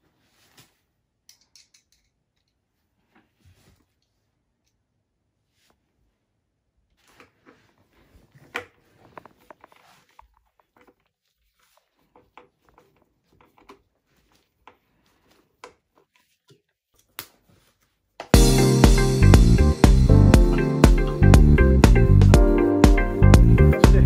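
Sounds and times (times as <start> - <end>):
loud guitar music: 18.4 - 24.0.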